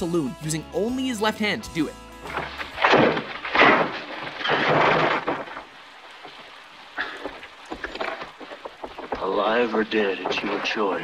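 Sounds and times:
sharp knocks: 2.3 - 6.4, 7.0 - 10.8.

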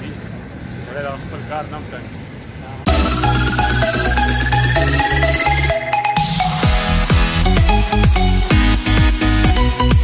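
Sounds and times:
road traffic rumble: 0.0 - 8.5.

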